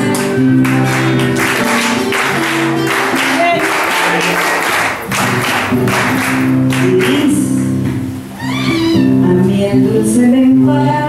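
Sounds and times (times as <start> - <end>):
woman singing: 0.0 - 1.0, 9.0 - 11.0
rhythmic handclaps: 0.0 - 8.1
strummed acoustic guitar: 0.0 - 9.4.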